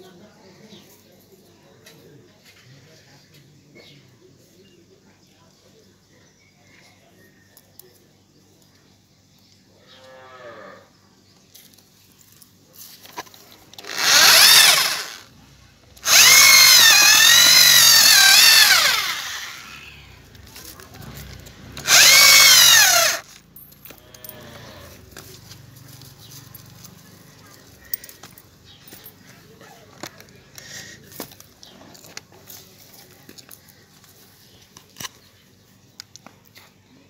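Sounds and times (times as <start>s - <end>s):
electric drill auger digging soil: 13.1s - 15.3s, 16.0s - 23.3s.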